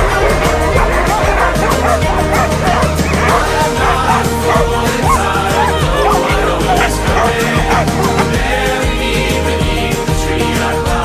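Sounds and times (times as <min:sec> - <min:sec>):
huskies barking and yipping: 0:00.0 - 0:09.9
background music with bass: 0:00.0 - 0:11.0.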